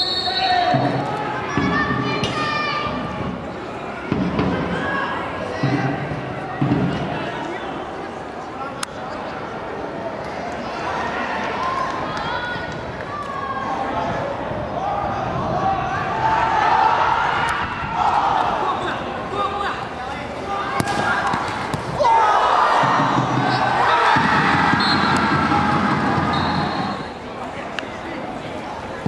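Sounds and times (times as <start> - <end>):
outdoor background noise: 0.0 - 29.0
players shouting: 10.7 - 27.2.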